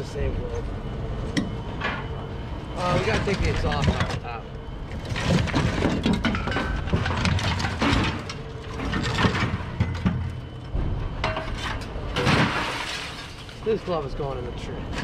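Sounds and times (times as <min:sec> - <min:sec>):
scrap metal clanking and scraping: 0:02.8 - 0:14.0.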